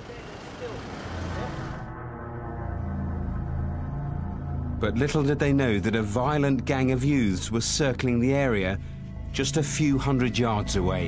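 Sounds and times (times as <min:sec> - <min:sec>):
road traffic hiss and rumble: 0:00.0 - 0:01.9.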